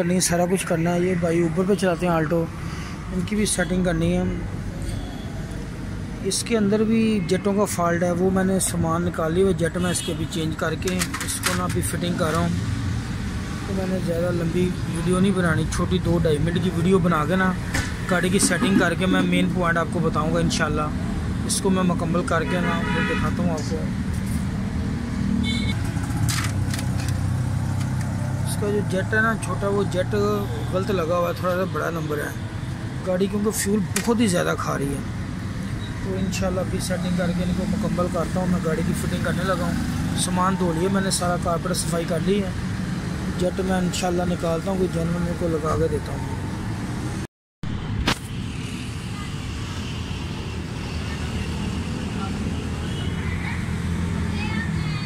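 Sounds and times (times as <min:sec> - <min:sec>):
vehicle engine rumbling: 0:00.0 - 0:22.4, 0:23.3 - 0:46.3
sharp click: 0:48.0 - 0:48.4.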